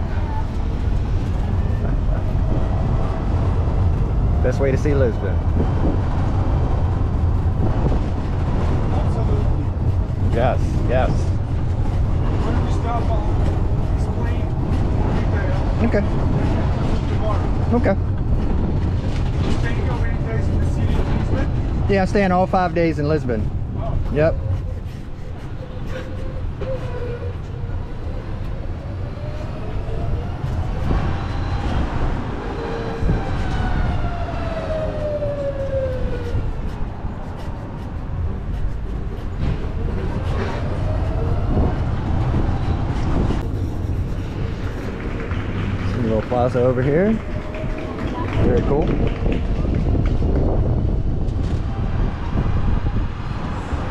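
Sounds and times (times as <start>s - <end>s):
road and wind rumble: 0.0s - 53.9s
faint voices: 39.2s - 50.2s.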